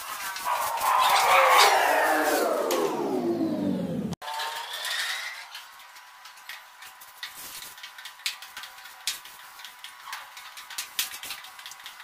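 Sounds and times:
electric motor winding down: 0.7s - 5.3s.

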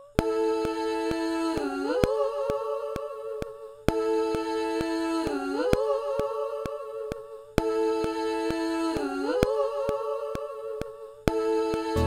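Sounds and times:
hummed vocal harmonies: 0.0s - 12.0s.

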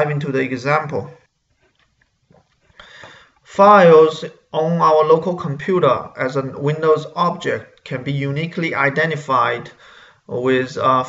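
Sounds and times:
man narrating: 0.0s - 1.2s, 3.5s - 11.0s.

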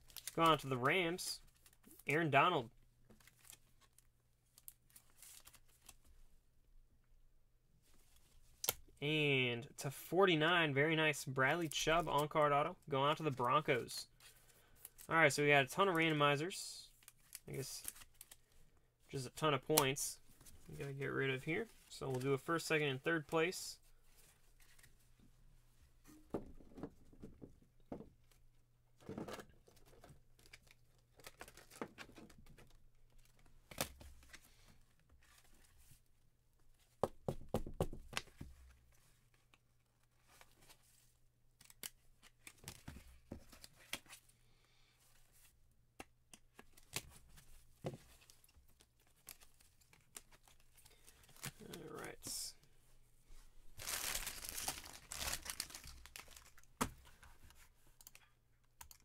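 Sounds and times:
plastic rustling and crinkling: 0.0s - 0.7s, 26.0s - 36.1s, 53.3s - 58.3s.

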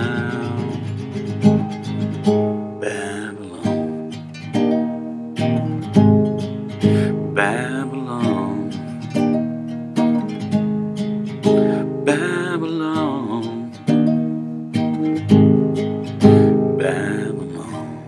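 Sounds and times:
classical guitar strummed chords: 0.0s - 18.0s
wordless sung notes: 0.0s - 18.0s.

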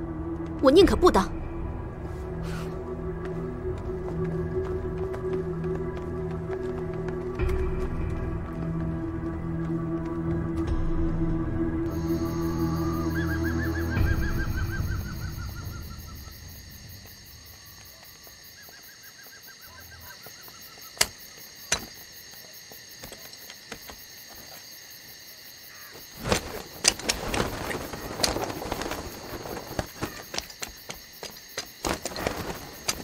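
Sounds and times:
film soundtrack music: 0.0s - 18.6s
clicks and rustling: 26.2s - 33.0s.

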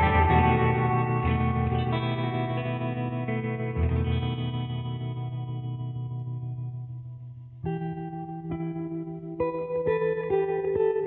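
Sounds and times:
guitar chords through effects: 0.0s - 11.0s.

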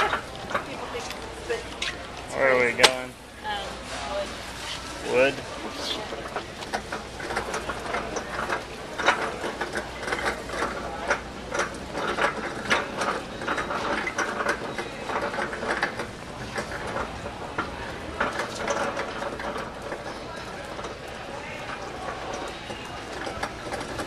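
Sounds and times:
cart rattling over concrete: 0.0s - 3.1s, 3.9s - 24.0s.

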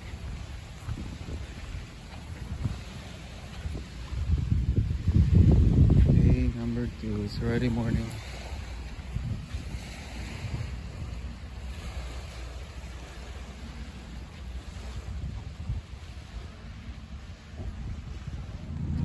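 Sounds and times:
small waves on sandy shore: 0.0s - 19.0s
wind buffeting microphone: 0.0s - 19.0s.

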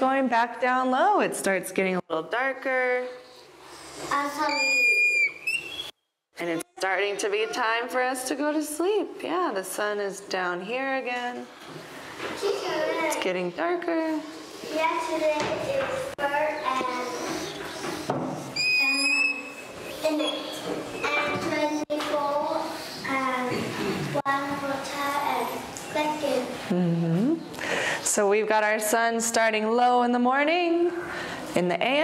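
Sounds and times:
marker squeaking on a whiteboard: 3.7s - 6.0s, 16.5s - 21.9s.

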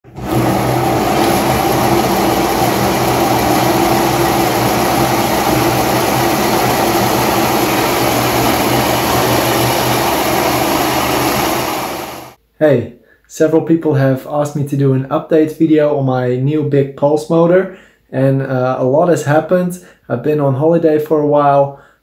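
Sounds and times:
motor whirring and humming: 0.0s - 12.4s.

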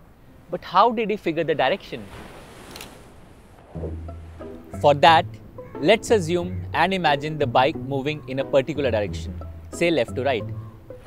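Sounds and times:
outdoor background hiss: 0.0s - 11.0s
low held musical note: 3.8s - 8.0s.

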